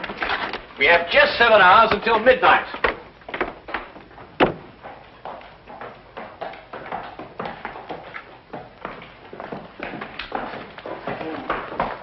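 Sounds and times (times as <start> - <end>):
light uneven knocks and taps: 2.8 - 12.0
sharp knock: 4.4 - 4.7.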